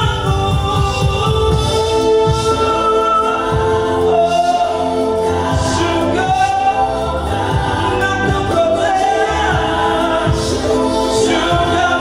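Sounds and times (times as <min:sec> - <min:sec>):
low drum beats: 0:00.0 - 0:02.8
man singing into microphone: 0:00.0 - 0:12.0
sustained instrumental chords: 0:00.0 - 0:12.0.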